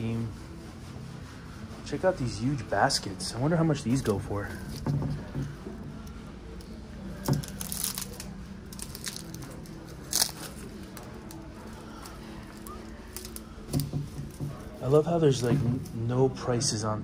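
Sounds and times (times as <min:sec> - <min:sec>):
woven baskets rustling and creaking: 0:01.8 - 0:16.7.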